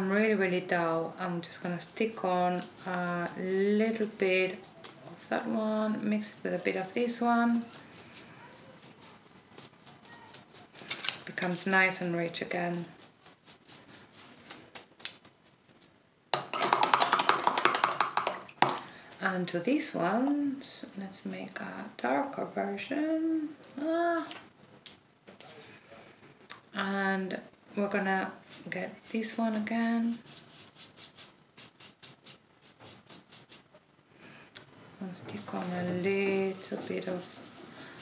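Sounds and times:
paintbrush rubbing strokes: 2.0s - 5.6s, 6.5s - 10.8s, 12.5s - 14.7s, 28.4s - 33.8s, 35.1s - 38.0s
brush dabs on paper: 28.4s - 33.7s, 35.3s - 38.0s.

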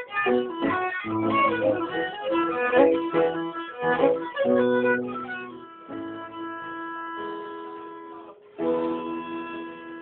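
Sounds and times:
violin and piano playing: 0.0s - 10.0s.

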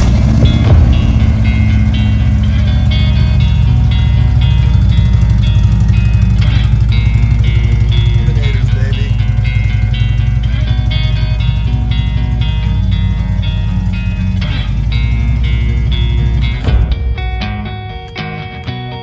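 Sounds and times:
motorcycle engine running: 0.0s - 18.7s
guitar background music: 0.0s - 19.0s.

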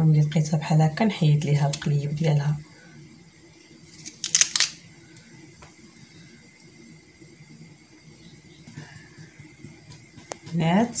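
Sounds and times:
low background hum: 0.0s - 11.0s.

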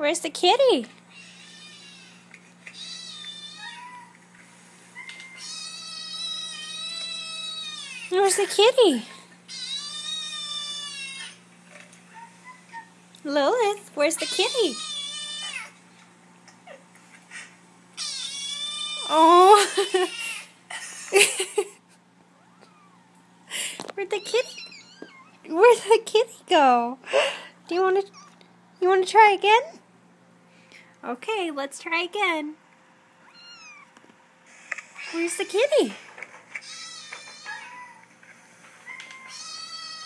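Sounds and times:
kitten meow through laptop speakers: 33.3s - 33.9s, 36.6s - 38.0s, 38.9s - 40.0s
kitten meowing through speakers: 33.3s - 33.9s.

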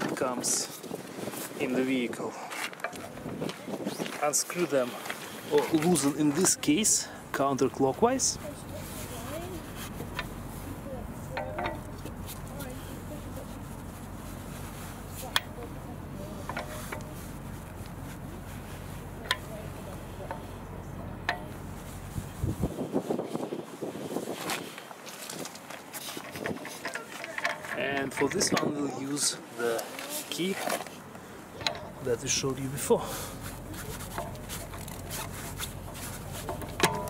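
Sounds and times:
metal rubbing and clinking: 5.5s - 22.7s, 25.3s - 37.0s
lug wrench clicking on wheel bolts: 31.6s - 32.0s, 34.1s - 37.0s.

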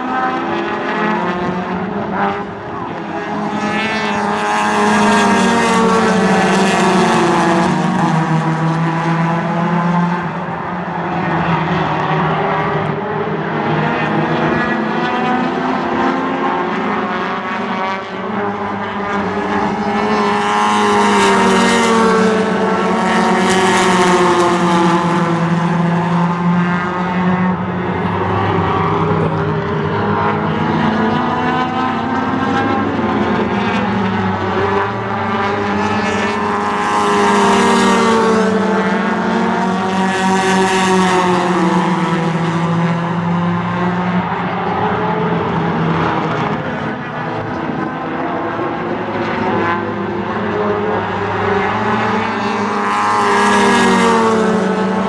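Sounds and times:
race car engines droning: 0.0s - 55.0s.

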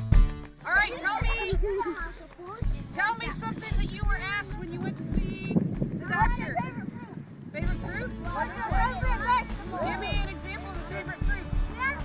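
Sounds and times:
young children talking and calling: 0.6s - 12.0s.

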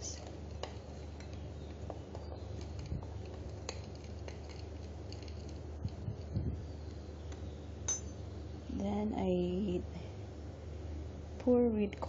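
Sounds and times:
flour mix stirred in a bowl: 0.0s - 7.0s
steady low hum: 0.0s - 12.0s.

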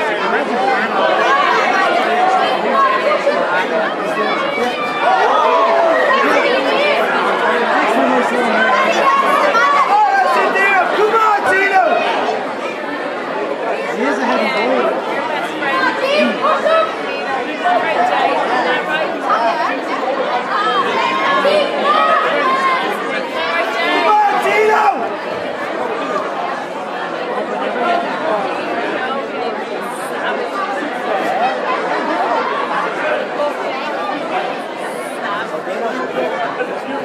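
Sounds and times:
crowd talking and calling out: 0.0s - 37.0s.

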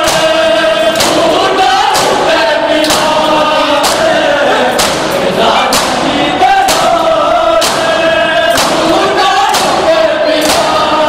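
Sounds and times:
hands slapping chests: 0.0s - 7.0s, 7.6s - 7.9s, 8.5s - 10.9s
men chanting together: 0.0s - 11.0s.

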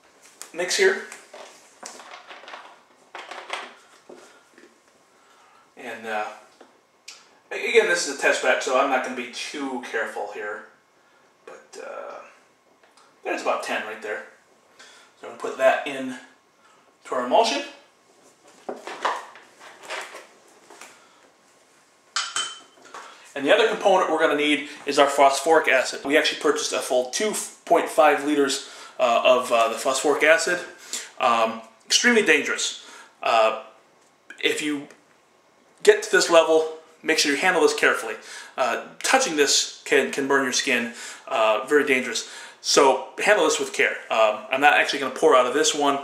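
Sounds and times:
glass clinking against plastic bottle: 22.2s - 22.8s.

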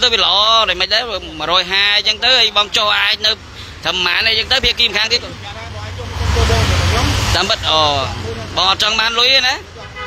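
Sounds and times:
vehicle passing on street: 0.0s - 10.0s.

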